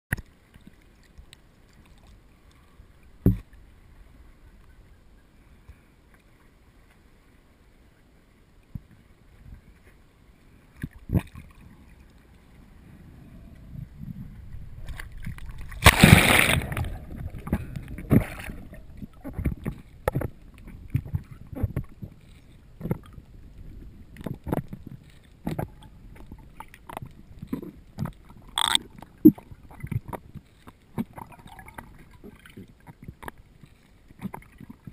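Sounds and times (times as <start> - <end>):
water lapping against camera case: 14.5 - 34.9.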